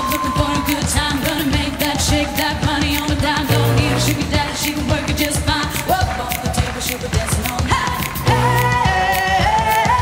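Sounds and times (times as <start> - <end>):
backing track with dance beat: 0.0 - 10.0
woman singing into microphone: 0.0 - 10.0.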